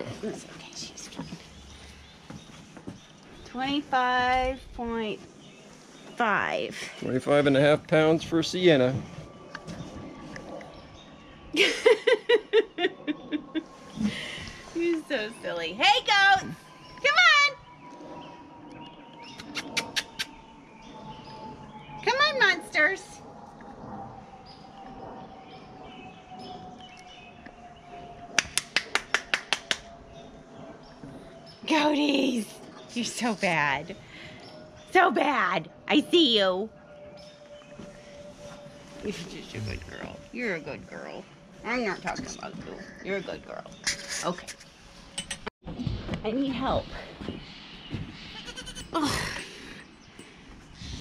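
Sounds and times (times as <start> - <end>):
faint bird chirps: 13.0 - 28.1
goat kid bleating: 48.4 - 49.0.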